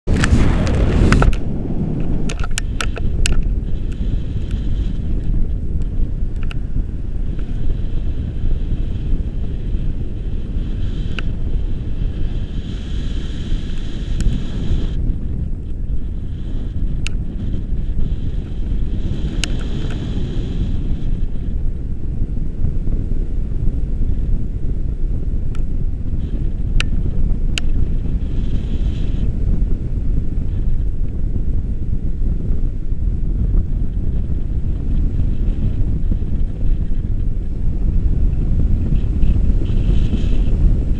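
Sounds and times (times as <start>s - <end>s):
wind buffeting microphone: 0.0s - 40.9s.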